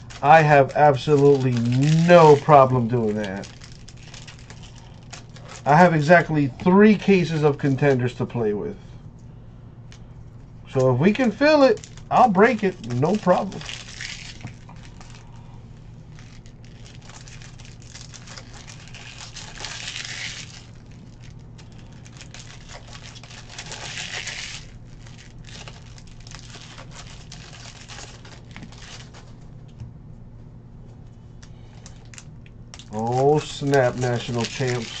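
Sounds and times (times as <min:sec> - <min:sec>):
plastic wrapper crinkling: 0:00.0 - 0:08.0, 0:10.7 - 0:29.8, 0:31.4 - 0:35.0.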